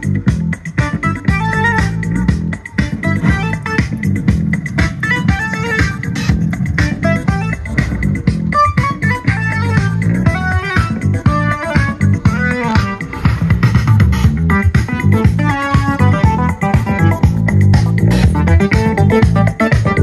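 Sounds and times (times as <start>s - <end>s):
guitar and bass music through speaker: 0.0s - 20.0s.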